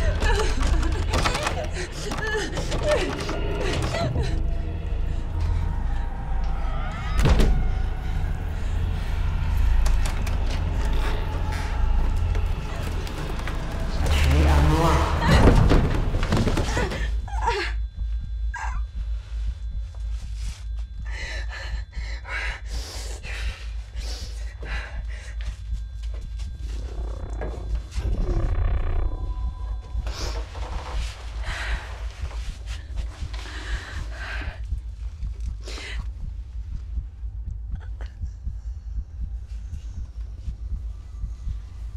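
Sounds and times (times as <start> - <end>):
heavy low rumble: 0.0 - 41.9
fast low pulsing: 7.2 - 41.9.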